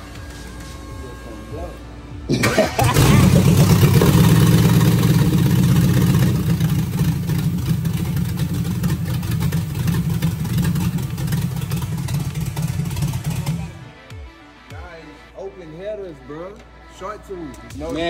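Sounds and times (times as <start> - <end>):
loud vee eight engine running: 2.8 - 13.8.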